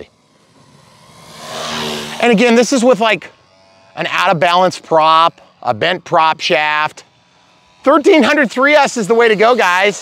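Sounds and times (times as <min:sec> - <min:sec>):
model plane motor droning: 0:00.0 - 0:10.0.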